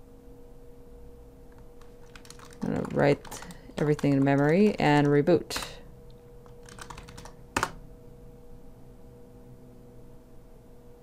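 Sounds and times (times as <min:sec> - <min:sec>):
faint steady hum: 0:00.0 - 0:11.0
keyboard key taps: 0:06.6 - 0:07.8.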